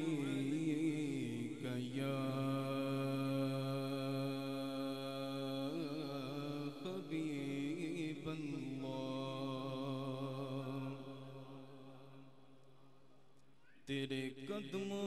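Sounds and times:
man singing: 0:00.0 - 0:11.1, 0:13.8 - 0:15.0.

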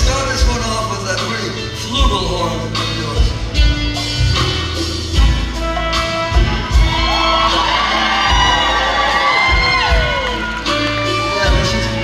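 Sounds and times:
live band playing: 0:00.0 - 0:12.0
audience whooping and cheering: 0:06.1 - 0:12.0.

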